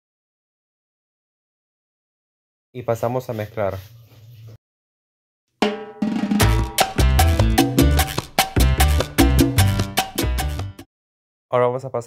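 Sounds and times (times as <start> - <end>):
upbeat latin music with percussion: 5.6 - 10.9.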